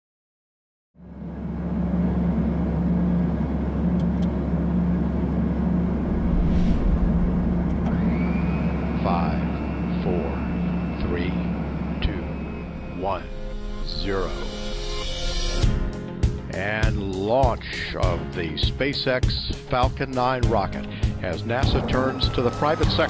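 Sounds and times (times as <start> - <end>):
rocket launch roar: 5.6 - 10.0
thin rising whistle tone: 5.7 - 15.6.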